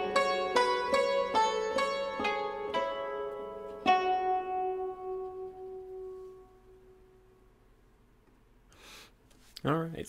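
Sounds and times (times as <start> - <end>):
plucked lute chord ringing: 0.0 - 7.8.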